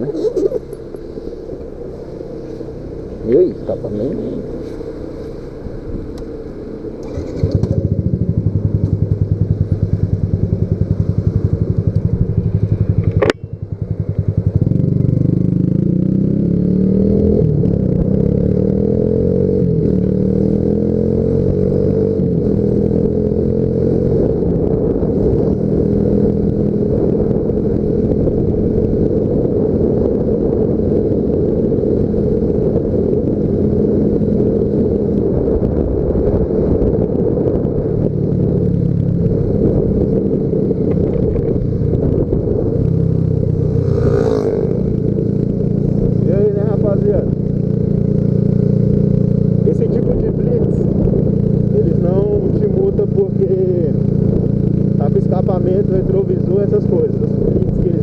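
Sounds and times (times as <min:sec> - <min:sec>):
motorcycle engine accelerating: 0:00.0 - 0:58.0.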